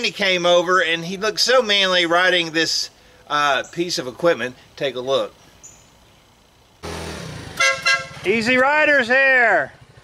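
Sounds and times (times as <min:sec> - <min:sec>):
small scooter engine running: 0:06.8 - 0:08.6, 0:09.6 - 0:10.0
scooter horn beeping: 0:07.5 - 0:08.3.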